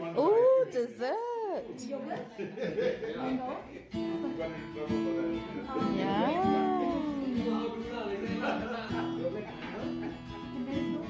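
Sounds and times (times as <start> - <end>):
strummed acoustic guitar chord: 4.0 - 11.0
voices: 4.6 - 10.0.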